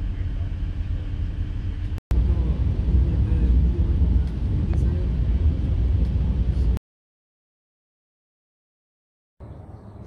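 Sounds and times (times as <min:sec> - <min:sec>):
train running low rumble: 0:00.0 - 0:06.8.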